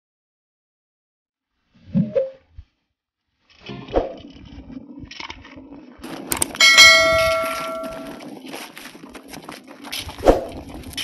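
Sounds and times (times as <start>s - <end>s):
bright bell ding: 6.6s - 8.2s.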